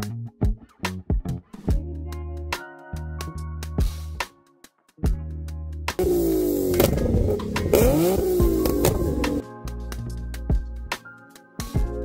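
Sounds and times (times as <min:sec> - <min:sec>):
background music: 0:00.0 - 0:12.0
car engine revving: 0:06.0 - 0:09.4.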